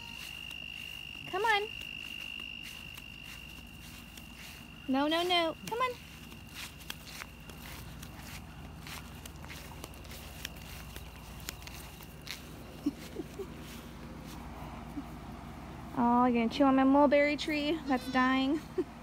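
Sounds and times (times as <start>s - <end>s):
faint steady high tone: 0.0s - 7.8s
footsteps on grass: 0.0s - 16.0s.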